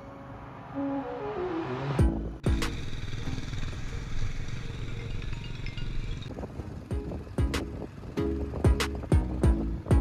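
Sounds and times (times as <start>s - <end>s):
motorcycle engine running: 2.0s - 10.0s
wind noise on microphone: 6.0s - 10.0s.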